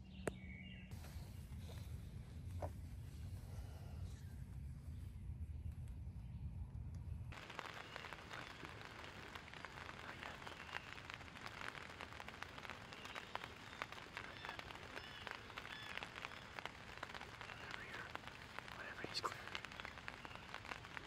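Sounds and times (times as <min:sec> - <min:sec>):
light rain hissing: 0:00.9 - 0:05.2, 0:07.3 - 0:21.0
raindrops ticking: 0:06.8 - 0:21.0.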